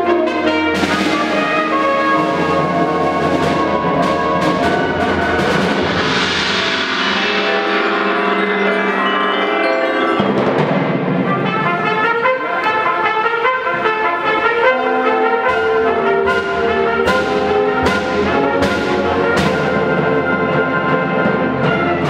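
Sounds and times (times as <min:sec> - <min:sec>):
concert band playing: 0:00.0 - 0:22.0
sharp percussion strikes: 0:00.8 - 0:12.8, 0:15.2 - 0:22.0.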